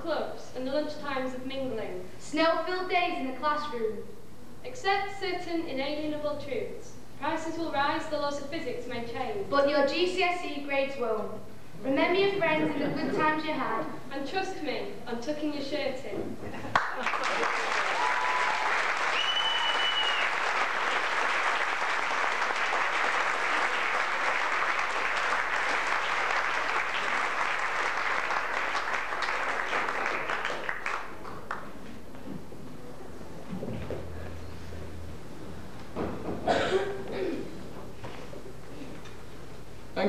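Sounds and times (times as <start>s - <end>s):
video recording hiss: 0.0s - 40.0s
audience applauding: 16.7s - 31.8s.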